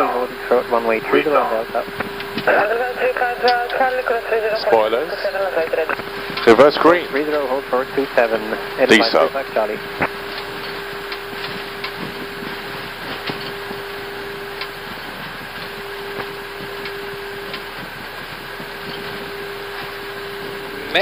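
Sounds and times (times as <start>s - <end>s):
constant hum: 0.0s - 21.0s.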